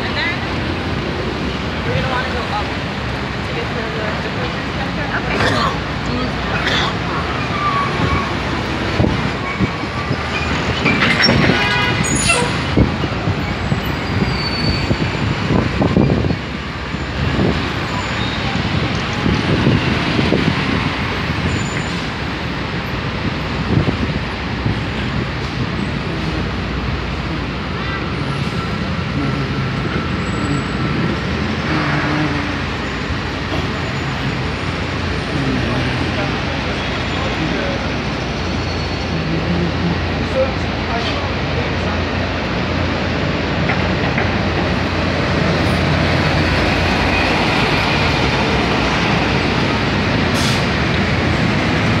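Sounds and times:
indistinct voices: 0.0s - 52.0s
passing cars: 0.0s - 52.0s.

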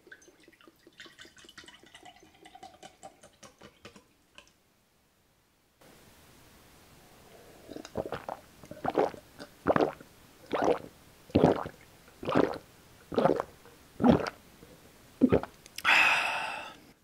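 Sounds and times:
person gulping juice: 7.3s - 16.7s.

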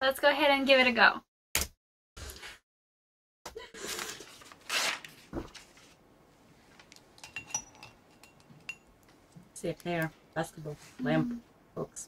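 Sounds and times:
tableware clinking: 7.2s - 9.0s.

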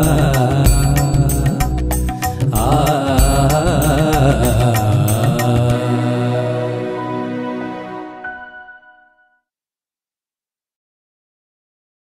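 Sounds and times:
drum beat: 0.0s - 1.3s, 2.4s - 5.2s
held chord: 0.0s - 9.3s
wavering melody line: 6.0s - 9.4s.

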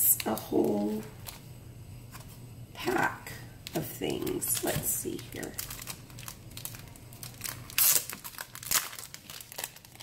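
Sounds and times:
plastic sleeve crinkling: 3.6s - 10.0s.

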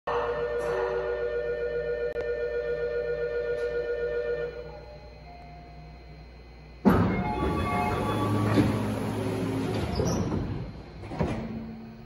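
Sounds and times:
low platform hum: 0.1s - 12.0s.

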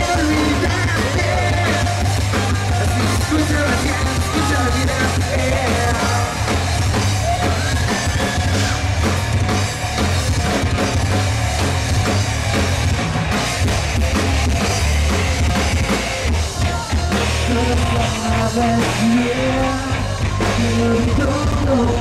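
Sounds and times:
drum kit steady beat: 0.0s - 22.0s
electric bass: 0.0s - 22.0s
electric guitar: 0.0s - 22.0s.

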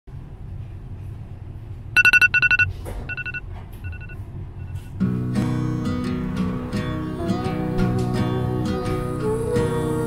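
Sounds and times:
electronic trilling ring: 2.0s - 4.2s
acoustic guitar music: 5.0s - 10.0s.

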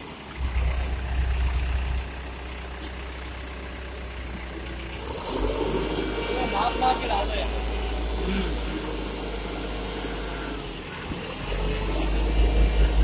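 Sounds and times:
diesel engine revving: 0.0s - 13.0s.

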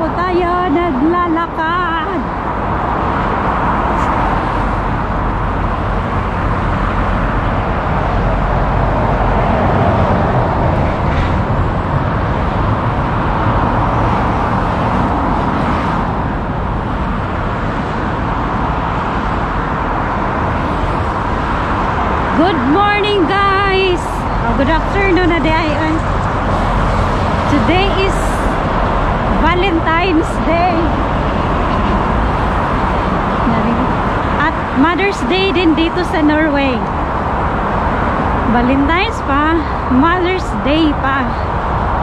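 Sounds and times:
road traffic passing: 0.0s - 42.0s
wind rumbling on microphone: 0.0s - 42.0s.

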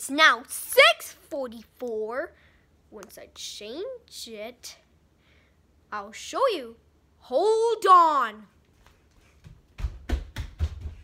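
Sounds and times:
child's footsteps on wooden floor: 8.7s - 11.0s.

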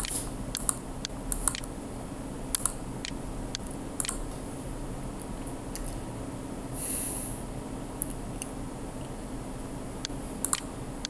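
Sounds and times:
low electrical hum: 0.0s - 11.0s
sharp breath through nose: 6.8s - 7.5s.

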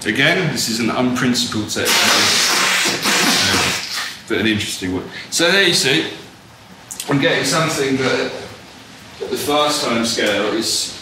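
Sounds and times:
loud hissing noise: 1.8s - 4.4s.

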